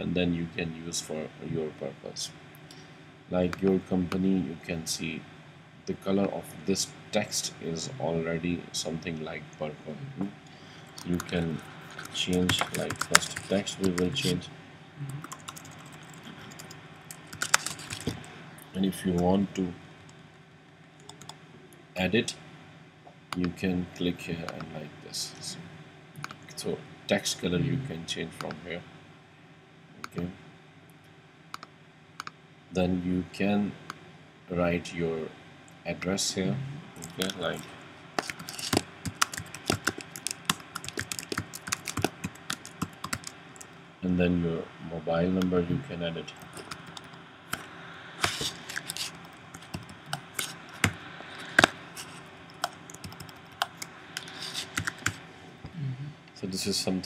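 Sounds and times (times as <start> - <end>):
computer keyboard keystrokes: 11.0 - 14.3, 15.2 - 18.2, 38.2 - 43.3, 52.5 - 55.2.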